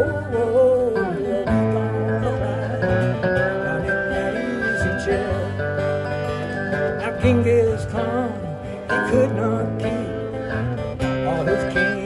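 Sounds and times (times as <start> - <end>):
slide guitar: 0.0 - 12.0
strummed acoustic guitar: 0.0 - 12.0.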